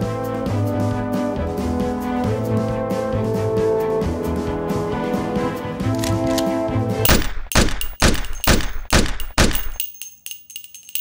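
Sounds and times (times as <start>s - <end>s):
gunshots with echo: 7.1s - 9.8s.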